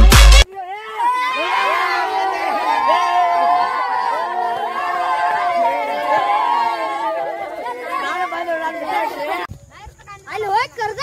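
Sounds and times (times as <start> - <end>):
group chatter: 0.4 - 9.5.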